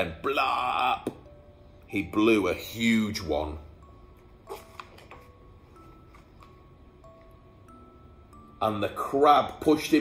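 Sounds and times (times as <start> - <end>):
soft background music: 0.0 - 10.0
paper page turning: 4.5 - 5.4.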